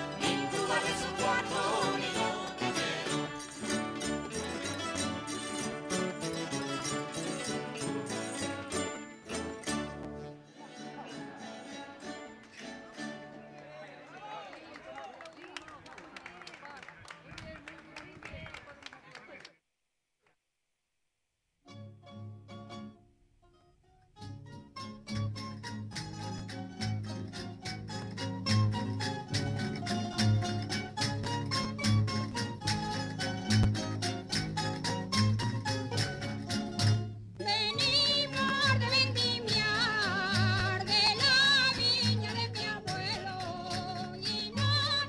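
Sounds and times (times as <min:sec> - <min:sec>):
singer with vibrato: 0:00.0 - 0:03.4, 0:37.4 - 0:45.0
folk dance accompaniment: 0:00.0 - 0:19.5, 0:24.2 - 0:45.0
people talking: 0:13.4 - 0:19.6.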